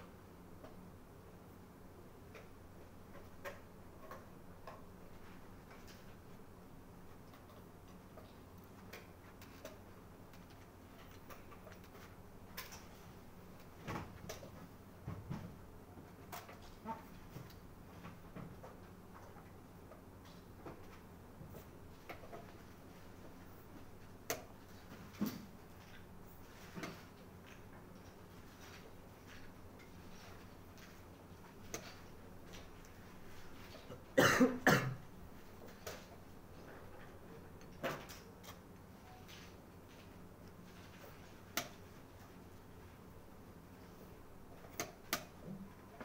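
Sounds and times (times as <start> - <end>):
person coughing: 33.9 - 35.0.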